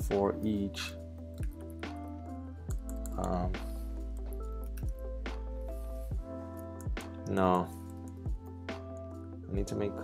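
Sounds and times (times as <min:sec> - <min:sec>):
held keyboard notes: 0:00.0 - 0:10.0.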